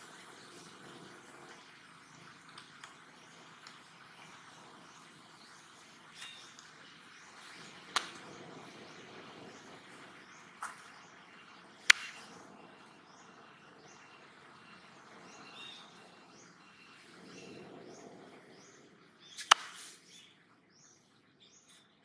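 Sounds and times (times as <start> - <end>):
high chirps of birds or insects: 0.0 - 22.0.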